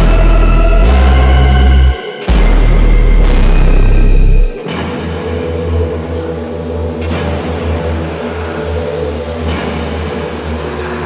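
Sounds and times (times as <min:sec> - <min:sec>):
low electronic drone: 0:00.0 - 0:11.0.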